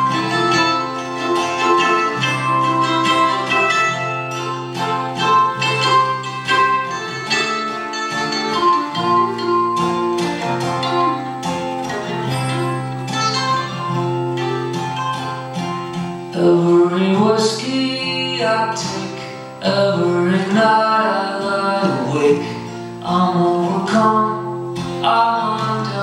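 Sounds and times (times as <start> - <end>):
acoustic guitar chords: 0.0 - 26.0
plucked mandolin notes: 0.0 - 26.0.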